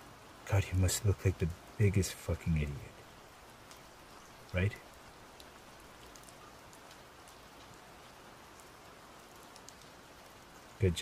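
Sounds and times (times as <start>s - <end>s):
faint steady rain: 0.0s - 11.0s
small drop ticks: 5.4s - 7.4s.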